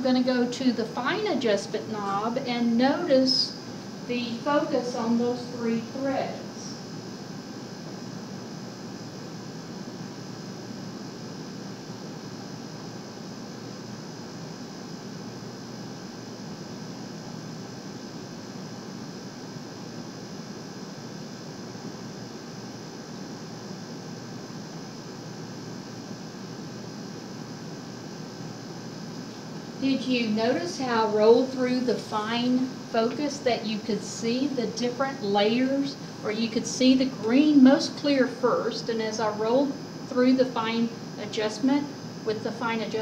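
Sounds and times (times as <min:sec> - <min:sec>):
faint electrical hum: 0:00.0 - 0:43.0.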